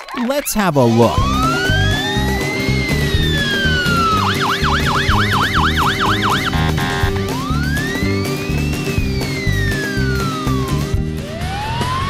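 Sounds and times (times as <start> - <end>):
background music with steady beat: 1.1 - 12.0
police siren wailing and yelping: 1.2 - 12.0.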